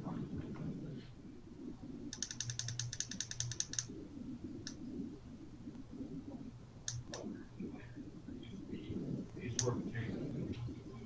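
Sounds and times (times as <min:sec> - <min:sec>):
computer keyboard typing: 0:02.1 - 0:03.9.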